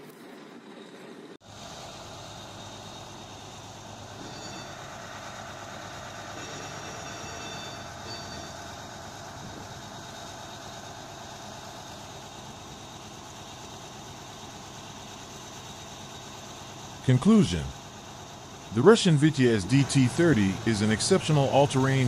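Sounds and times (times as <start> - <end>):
tracked vehicle engines droning: 0.2 - 22.0.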